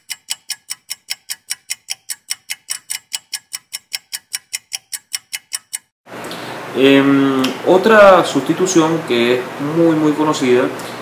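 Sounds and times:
rapid electronic clicks: 0.0 - 5.9.

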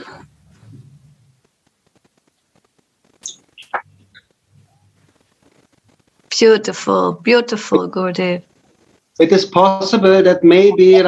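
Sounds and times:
short high chirps: 3.2 - 3.9.

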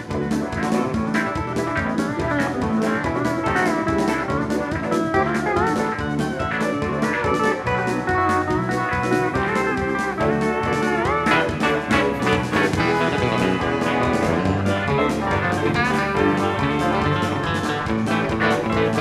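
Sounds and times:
drums keeping a steady beat: 0.0 - 19.0
pedal steel guitar: 0.0 - 19.0.

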